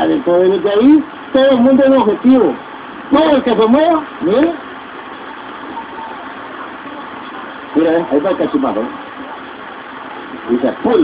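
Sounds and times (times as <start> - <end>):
street ambience: 0.0 - 11.0.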